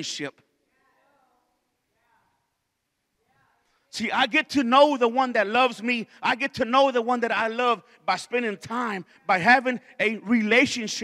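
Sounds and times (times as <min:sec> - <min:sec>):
man speaking: 0:00.0 - 0:00.4, 0:03.9 - 0:11.0.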